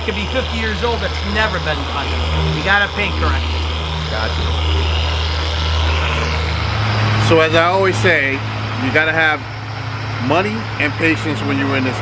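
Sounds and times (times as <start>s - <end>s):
car polisher humming: 0.0s - 12.0s
higher steady hum: 0.0s - 12.0s.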